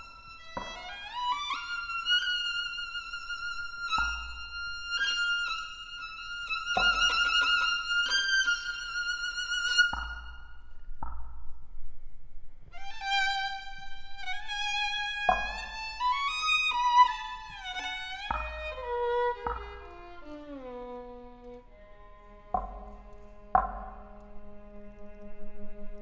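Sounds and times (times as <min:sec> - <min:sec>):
mallet strikes on gourd: 0:00.6 - 0:01.1, 0:03.9 - 0:04.8, 0:06.7 - 0:08.2, 0:09.8 - 0:11.6, 0:15.2 - 0:17.2, 0:17.8 - 0:20.2, 0:22.5 - 0:24.4
violins sliding downward: 0:12.7 - 0:26.0.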